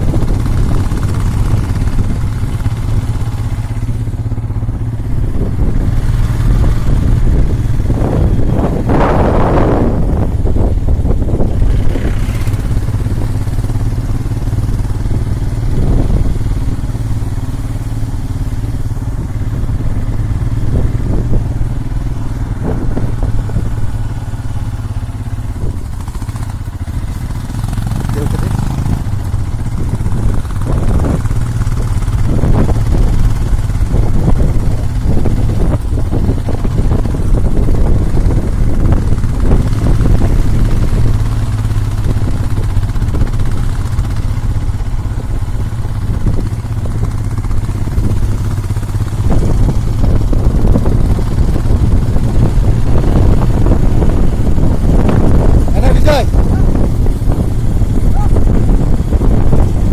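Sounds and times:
motorcycle engine droning: 0:00.0 - 0:59.9.

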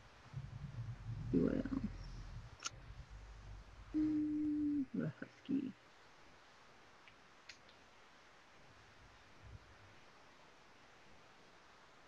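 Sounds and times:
person murmuring: 0:01.1 - 0:02.0, 0:03.9 - 0:05.7
person humming: 0:03.9 - 0:05.0.

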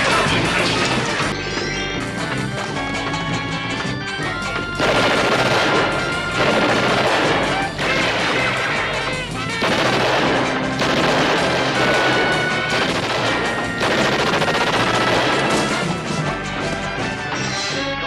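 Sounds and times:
orchestral music: 0:00.0 - 0:18.0
rapid automatic gunfire: 0:04.8 - 0:16.1.

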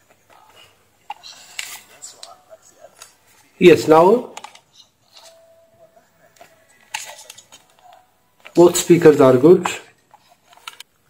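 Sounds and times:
faint music from headphones: 0:00.0 - 0:11.0.

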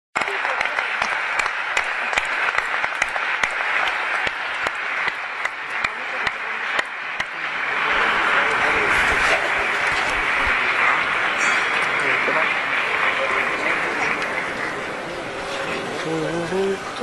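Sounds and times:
sharp individual claps: 0:00.2 - 0:07.8
audience applauding: 0:00.2 - 0:17.0.

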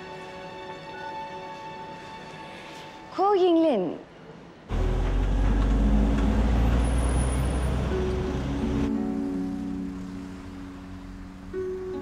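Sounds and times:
street traffic rumble: 0:04.7 - 0:12.0.

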